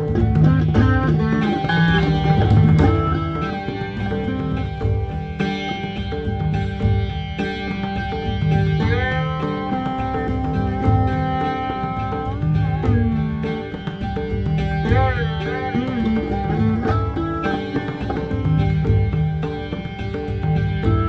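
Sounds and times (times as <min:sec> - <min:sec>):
plucked string instrument sliding: 0:00.0 - 0:21.0.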